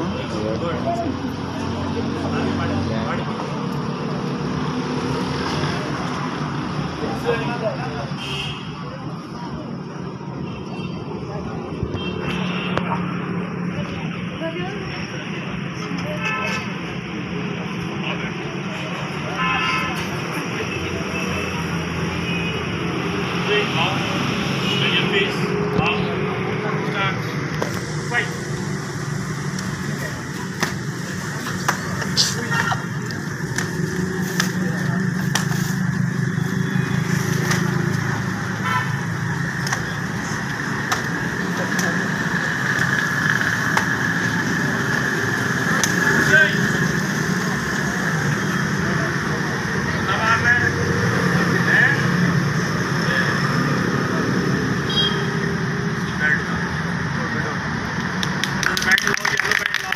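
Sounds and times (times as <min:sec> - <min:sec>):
indistinct voices: 0:00.0 - 0:59.9
urban background noise: 0:00.0 - 0:59.9.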